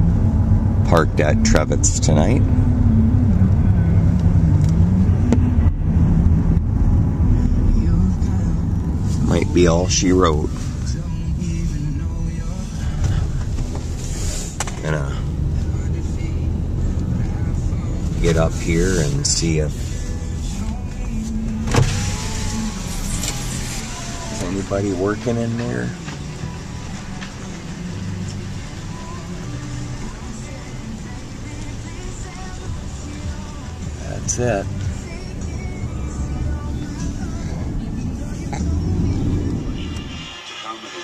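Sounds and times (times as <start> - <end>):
car engine and road noise: 0.0 - 41.0
power window motor whining: 21.6 - 24.5.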